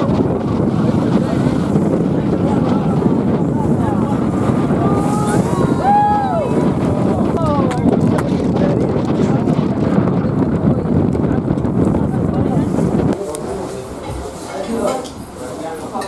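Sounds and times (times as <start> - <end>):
boat engine: 0.0 - 16.0
water noise: 0.0 - 16.0
wind buffeting microphone: 0.0 - 16.0.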